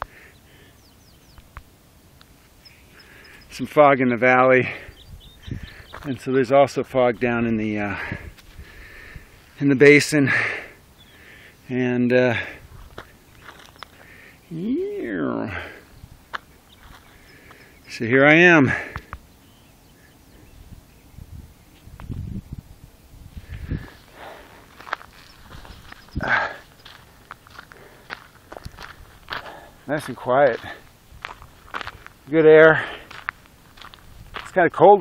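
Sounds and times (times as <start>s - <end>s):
quiet outdoor air: 0.0s - 35.0s
footsteps crunching on a trail: 4.6s - 6.4s, 7.2s - 9.7s, 12.4s - 14.4s, 15.0s - 18.0s, 23.3s - 35.0s
man saying drawn-out word: 14.5s - 15.6s.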